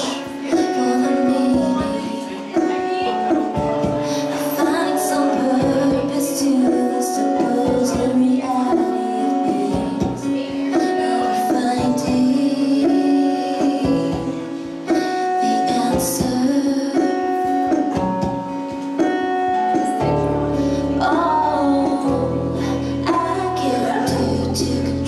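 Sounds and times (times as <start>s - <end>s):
acoustic guitar: 0.0s - 25.0s
woman singing: 0.0s - 25.0s
bass guitar notes: 17.6s - 25.0s.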